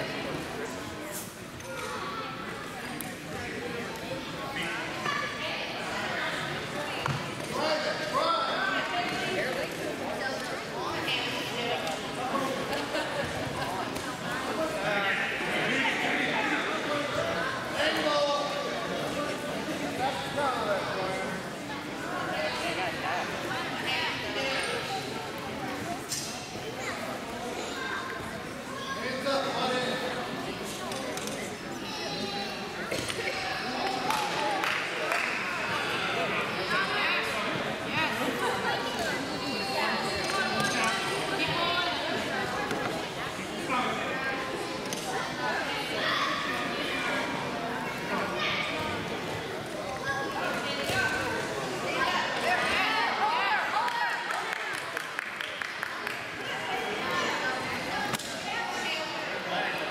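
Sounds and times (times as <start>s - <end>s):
people talking and calling out: 0.0s - 59.9s.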